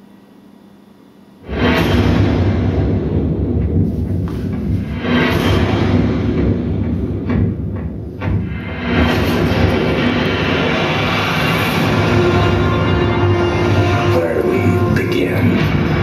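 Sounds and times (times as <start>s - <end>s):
dramatic film score: 1.4s - 16.0s.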